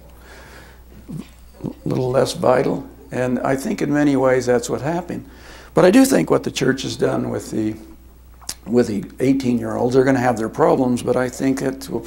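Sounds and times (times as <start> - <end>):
man hesitation sounds: 1.0 - 12.0
man talking: 1.1 - 12.0.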